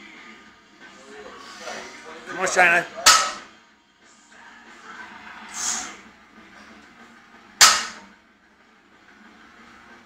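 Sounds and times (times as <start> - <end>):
gym room noise: 1.2 - 10.0
barbell clanging on gym floor: 3.0 - 3.5, 7.6 - 8.1.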